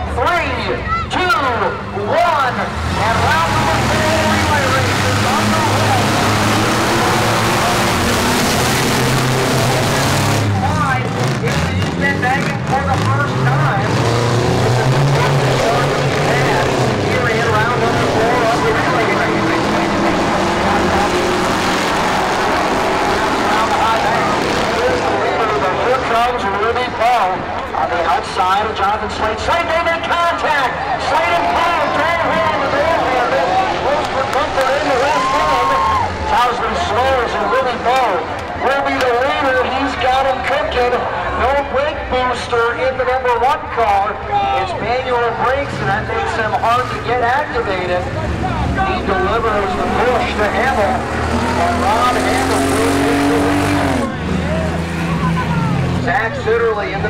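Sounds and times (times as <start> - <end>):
race car engines revving: 0.0 - 57.0
spectators talking: 0.0 - 57.0.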